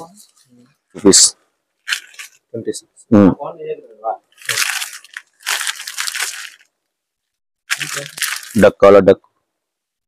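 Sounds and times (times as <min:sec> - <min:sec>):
plastic sleeves crinkling: 0:01.8 - 0:02.5, 0:04.3 - 0:08.8.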